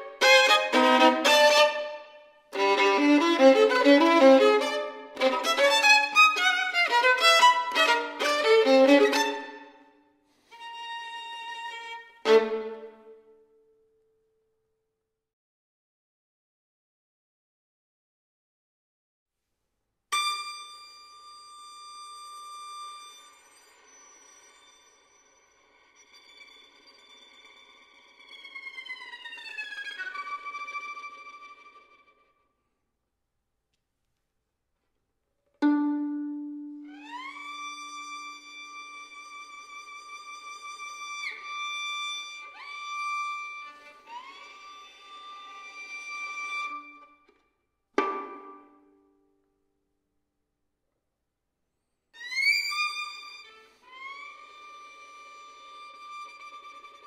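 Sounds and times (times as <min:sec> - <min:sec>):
violin sustained sliding notes: 0:00.0 - 0:09.8, 0:35.6 - 0:47.1.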